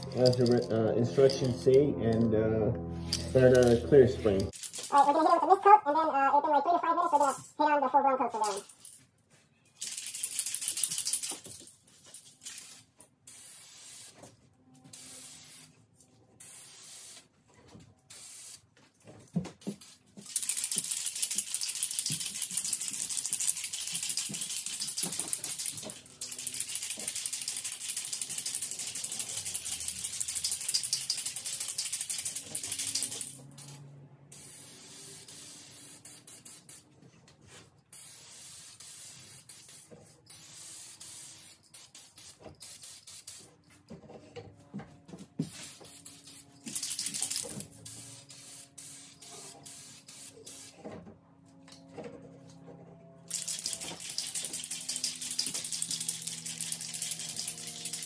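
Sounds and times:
aerosol spray hissing: 38.0 - 43.5.

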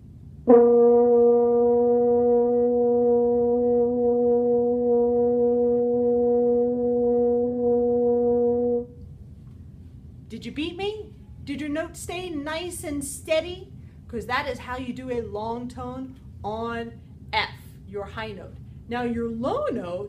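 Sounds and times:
french horn long tone: 0.3 - 9.2.

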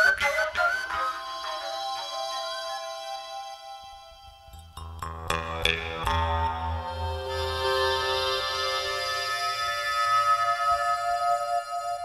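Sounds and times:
solo flute music: 0.0 - 4.8, 6.8 - 12.0
low drone: 5.6 - 12.0.

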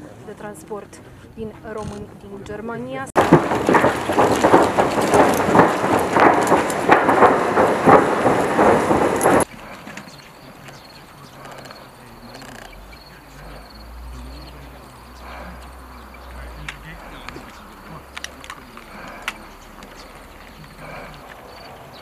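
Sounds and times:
knocking and rustling of gear: 3.2 - 22.0.

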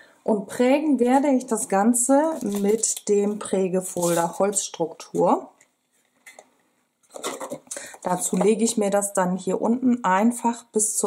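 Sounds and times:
rustling and tapping of plastic: 6.1 - 8.8.

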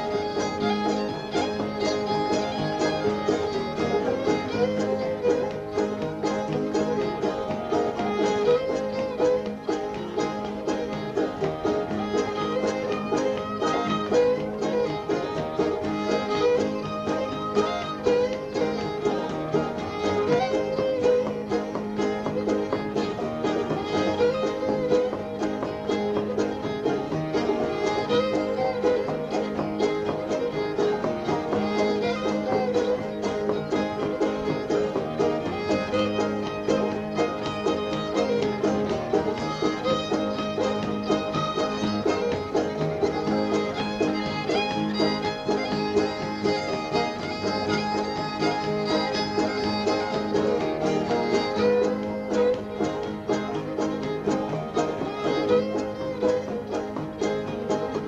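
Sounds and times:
banjo: 0.0 - 58.0
fiddle tune: 0.0 - 58.0
guitar: 0.0 - 58.0.

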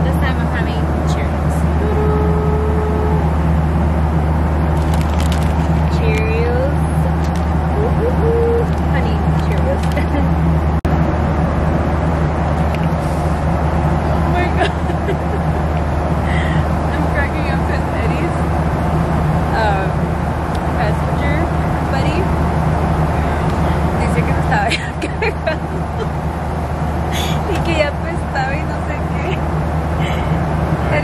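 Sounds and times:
faint passenger voices: 0.0 - 3.4, 5.9 - 10.3, 14.3 - 18.4, 19.5 - 20.0, 23.0 - 26.2, 27.1 - 29.4, 30.0 - 31.0
airliner cabin drone: 0.0 - 31.0.

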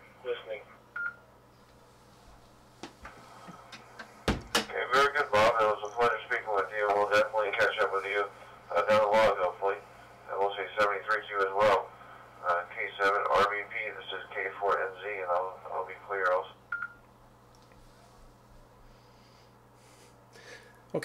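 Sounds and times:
radio speaker hum: 0.0 - 16.8
man talking over radio: 0.2 - 0.7, 4.7 - 16.6.

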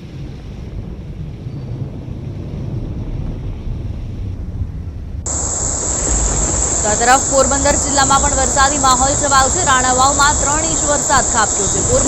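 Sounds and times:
wind rumble on microphone: 0.0 - 12.0
passing traffic: 5.2 - 12.0
crickets chirring: 5.3 - 12.0.

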